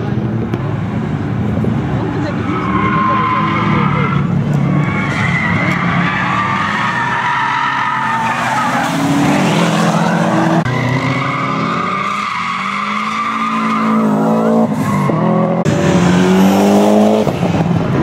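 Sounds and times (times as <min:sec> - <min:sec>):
tyres squealing: 0:02.4 - 0:15.4
car engine revving hard: 0:08.6 - 0:18.0.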